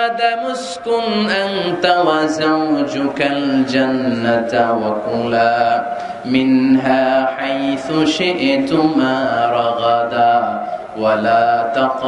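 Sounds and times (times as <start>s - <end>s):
man chanting through microphone: 0.0s - 12.0s.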